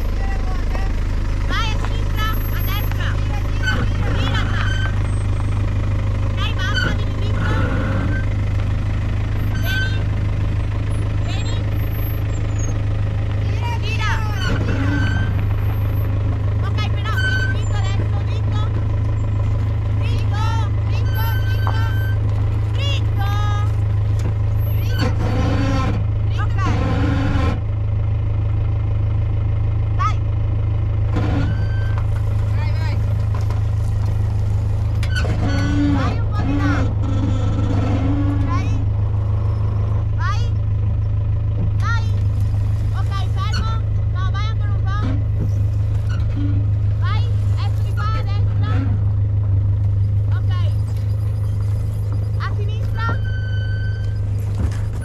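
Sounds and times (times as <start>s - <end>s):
vehicle engine running low: 0.0s - 55.0s
voices calling out: 0.0s - 55.0s.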